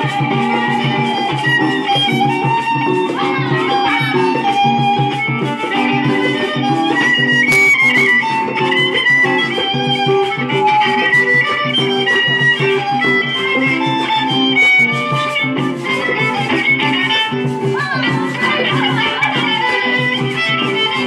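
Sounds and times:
strummed string accompaniment: 0:00.0 - 0:21.0
violin melody: 0:00.0 - 0:21.0.

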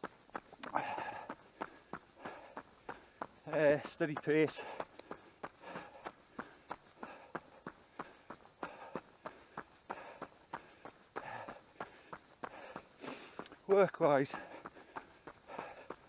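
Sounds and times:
runner breathing: 0:00.0 - 0:16.0
running footsteps on tarmac: 0:00.0 - 0:16.0.

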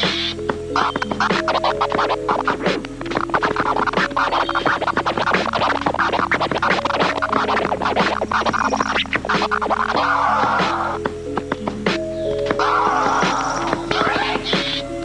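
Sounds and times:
musical backing of held notes: 0:00.0 - 0:15.0
vinyl record scratching: 0:00.0 - 0:15.0.

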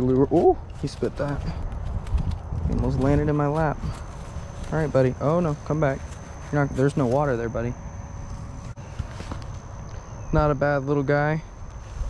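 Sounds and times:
footsteps on grass: 0:00.0 - 0:10.0.

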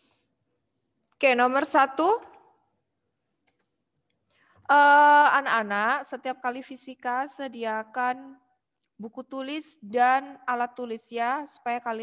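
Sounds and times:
woman's voice: 0:01.2 - 0:02.4, 0:04.7 - 0:08.4, 0:09.0 - 0:12.0
keyboard clicks: 0:03.4 - 0:03.7.

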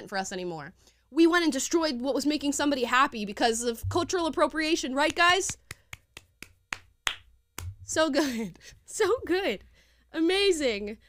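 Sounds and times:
woman speaking: 0:00.0 - 0:05.6, 0:07.8 - 0:09.6, 0:10.2 - 0:11.0.

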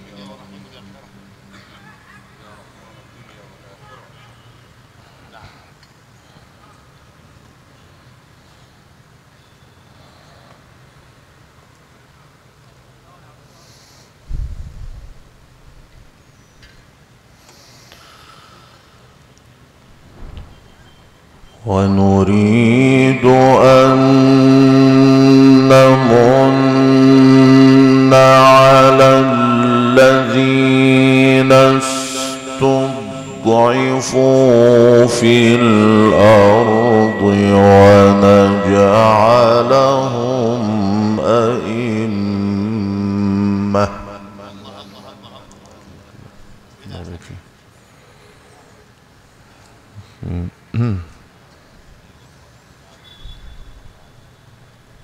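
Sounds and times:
man reciting melodically: 0:00.0 - 0:01.5, 0:21.6 - 0:46.1.

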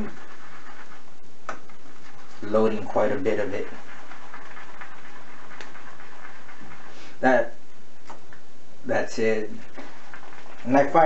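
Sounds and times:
shaving brush swishing on soap: 0:00.0 - 0:01.1, 0:01.7 - 0:07.2, 0:09.4 - 0:11.0.

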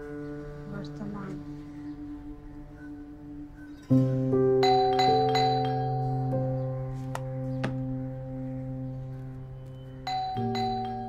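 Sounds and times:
soft held chord music: 0:00.0 - 0:11.0.

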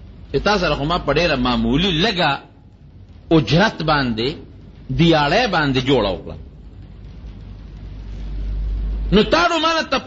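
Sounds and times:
low deep rumble: 0:06.3 - 0:09.2.

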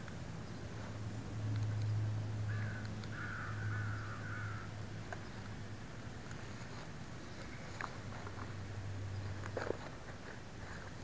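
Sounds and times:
steady low hum: 0:00.0 - 0:11.0
crow cawing: 0:02.5 - 0:04.8.

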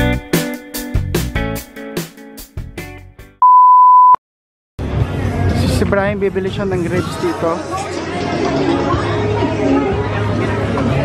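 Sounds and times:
electronic beep: 0:03.4 - 0:04.2
crowd noise: 0:04.8 - 0:11.0.

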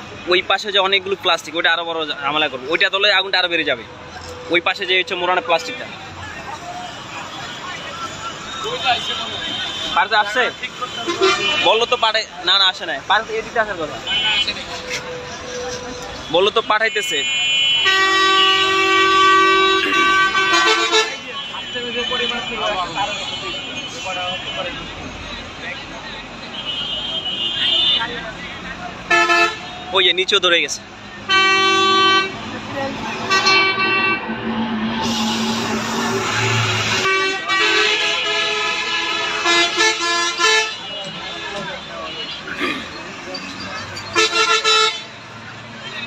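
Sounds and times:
people's voices: 0:00.0 - 0:37.5, 0:40.7 - 0:46.0
street traffic: 0:00.0 - 0:46.0
vehicle horn: 0:07.3 - 0:12.1, 0:16.9 - 0:24.8, 0:29.1 - 0:29.9, 0:31.3 - 0:32.5, 0:33.2 - 0:42.4, 0:44.1 - 0:45.2.

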